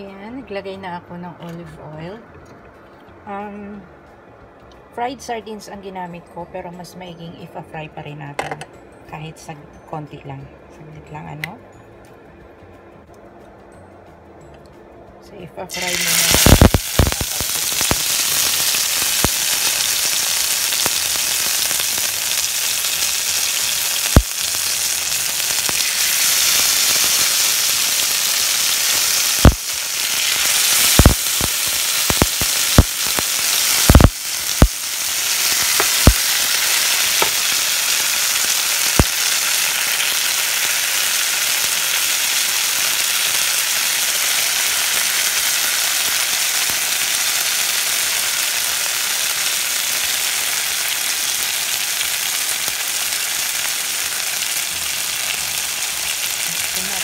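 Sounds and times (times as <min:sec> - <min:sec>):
fish sizzling in a pan: 0:15.7 - 0:57.0.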